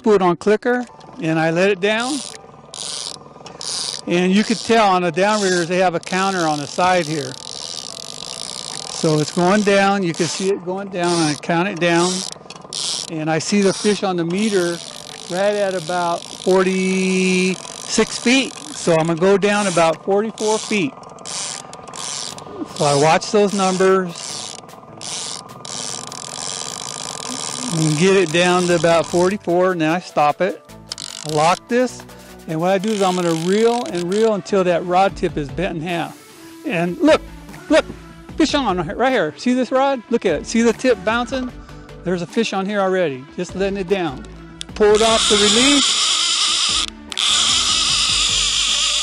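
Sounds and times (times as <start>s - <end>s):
fishing reel clicker ratcheting: 0.4s - 34.7s, 44.0s - 49.0s
mechanical whir: 1.0s - 29.4s, 44.9s - 49.0s.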